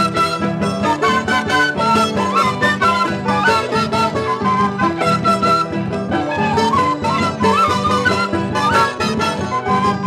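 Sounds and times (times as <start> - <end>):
high melody line: 0.0 - 10.0
strummed charangos: 0.0 - 10.0.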